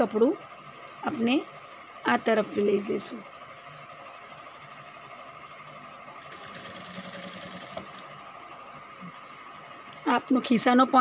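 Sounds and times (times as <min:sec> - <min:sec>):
sewing machine motor humming: 0:06.2 - 0:08.1.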